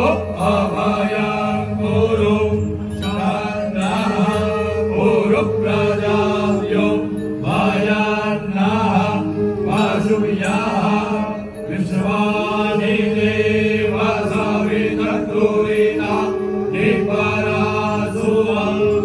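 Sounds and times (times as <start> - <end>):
men chanting into microphones: 0.0 - 19.0.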